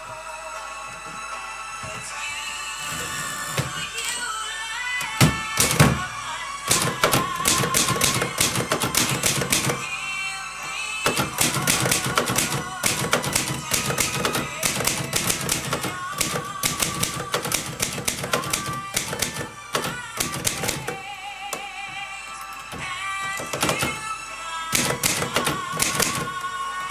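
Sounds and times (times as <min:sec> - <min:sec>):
music: 0:00.0 - 0:26.9
manual typewriter typing: 0:05.1 - 0:06.0, 0:06.7 - 0:09.8, 0:11.0 - 0:21.7, 0:22.5 - 0:24.1, 0:24.7 - 0:26.9.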